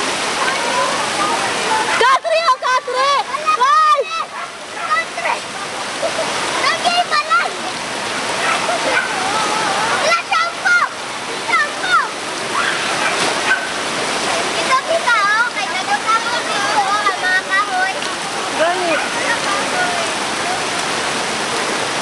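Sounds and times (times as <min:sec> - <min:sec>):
people calling and talking: 0:00.0 - 0:21.9
floodwater rushing: 0:00.0 - 0:22.0.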